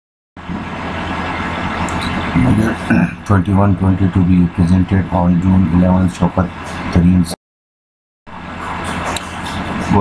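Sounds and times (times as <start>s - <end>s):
low hum and hiss: 0.4s - 7.4s
man speaking: 2.3s - 7.4s, 9.8s - 10.0s.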